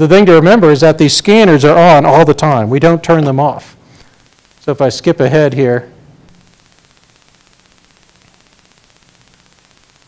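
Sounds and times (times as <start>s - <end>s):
faint hum: 0.0s - 10.0s
low steady hiss: 0.0s - 10.0s.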